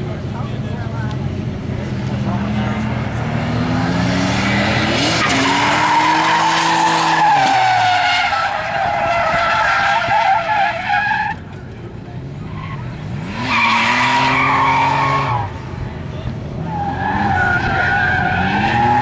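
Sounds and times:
car engine revving: 0:00.0 - 0:19.0
tires squealing: 0:01.8 - 0:19.0.

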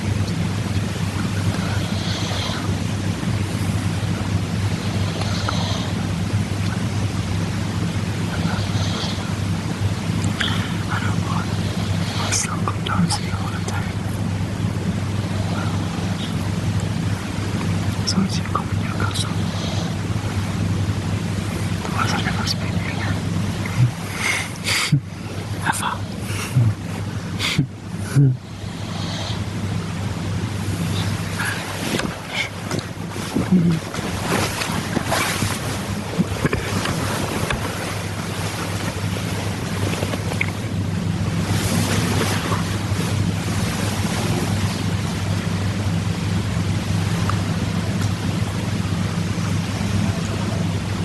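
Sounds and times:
low electrical hum: 0:00.0 - 0:51.0
microphone hiss: 0:00.0 - 0:51.0
whispered conversation: 0:10.3 - 0:14.3, 0:18.0 - 0:20.0, 0:21.6 - 0:28.6
bedclothes rustling and clicking: 0:31.6 - 0:40.6.

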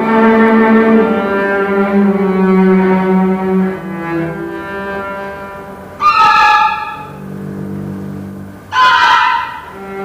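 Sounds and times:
cello with chamber orchestra: 0:00.0 - 0:10.0.

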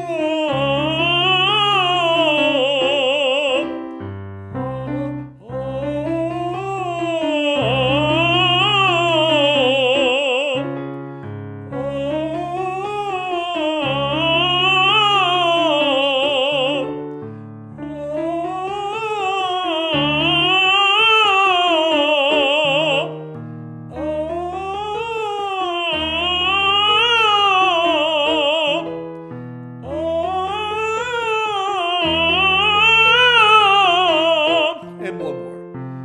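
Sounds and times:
man singing scale exercise: 0:00.0 - 0:04.0, 0:04.6 - 0:11.0, 0:11.7 - 0:17.1, 0:17.8 - 0:23.3, 0:23.9 - 0:29.2, 0:29.8 - 0:35.7
piano accompaniment: 0:00.0 - 0:36.0.

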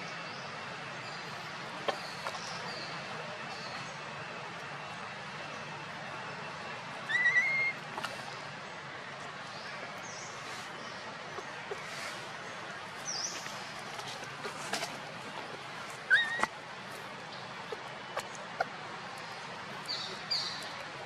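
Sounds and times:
steady background hiss: 0:00.0 - 0:21.0
baby monkey rising call: 0:07.1 - 0:07.8, 0:16.0 - 0:16.5.

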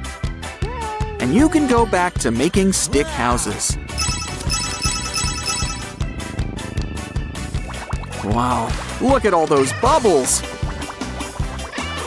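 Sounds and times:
bright bell-like chime: 0:04.0 - 0:06.0.

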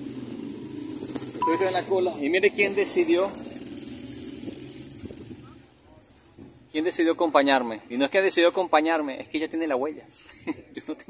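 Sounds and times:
faint street background noise: 0:00.0 - 0:11.0.

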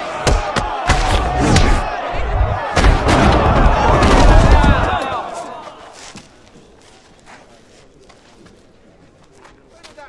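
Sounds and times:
heavy blows landing: 0:00.2 - 0:05.3.

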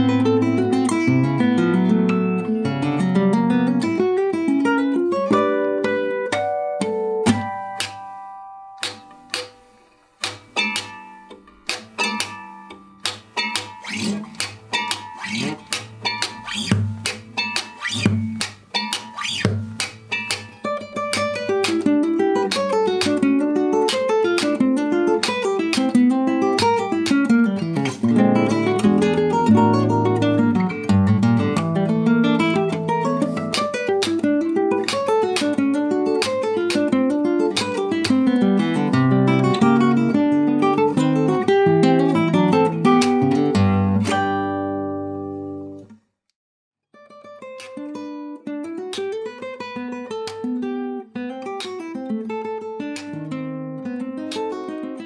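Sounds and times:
classical guitar playing: 0:00.0 - 0:46.0, 0:47.0 - 0:55.0.

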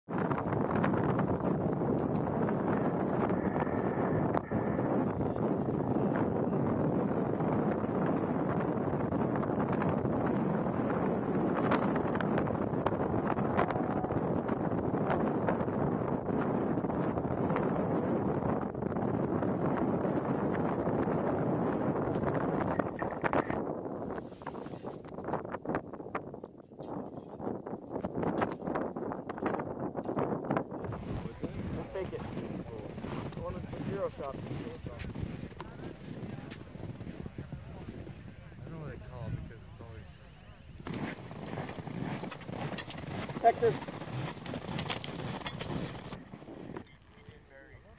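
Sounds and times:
wind buffeting microphone: 0:00.0 - 0:47.9
scattered crackles: 0:22.1 - 0:25.4, 0:40.8 - 0:47.4.

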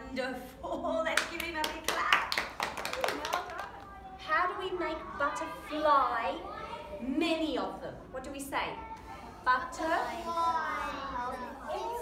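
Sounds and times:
people clapping: 0:01.2 - 0:04.0.

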